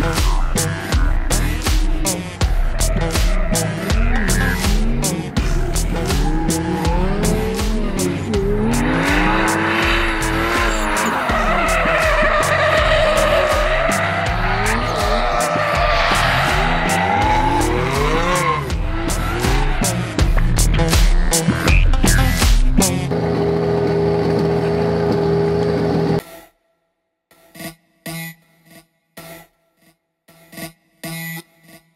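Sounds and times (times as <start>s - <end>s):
background music with a beat: 0.0s - 23.2s
car engine revving: 0.0s - 26.2s
tyres squealing: 2.8s - 20.3s.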